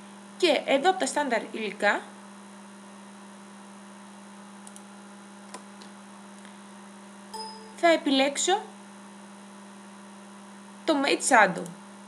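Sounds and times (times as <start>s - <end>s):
low electrical hum: 0.0s - 12.0s
faint clicks: 4.6s - 4.9s.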